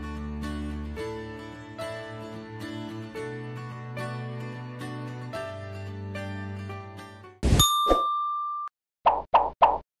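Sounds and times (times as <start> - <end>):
ding tone: 7.6 - 8.7.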